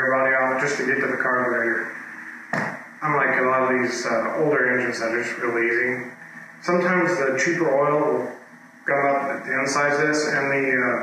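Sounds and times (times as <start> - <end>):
man talking: 0.0 - 2.0, 3.0 - 11.0.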